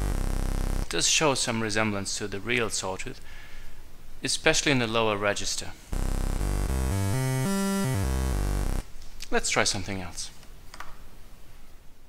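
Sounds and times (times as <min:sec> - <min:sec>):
synthesizer playing short low notes: 0:00.0 - 0:00.9, 0:06.0 - 0:08.8.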